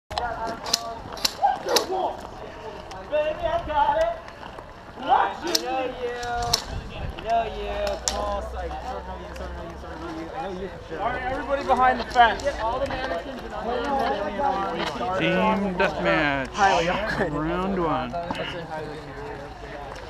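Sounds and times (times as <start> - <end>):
people talking indistinctly: 0.1 - 20.0.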